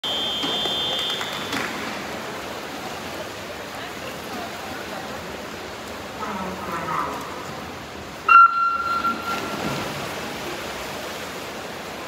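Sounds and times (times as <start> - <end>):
referee's whistle: 0.0 - 1.7, 8.3 - 9.6.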